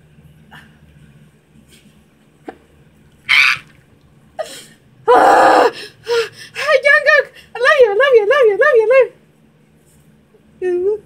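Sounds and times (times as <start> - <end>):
woman squealing: 3.3 - 3.7, 5.1 - 5.8.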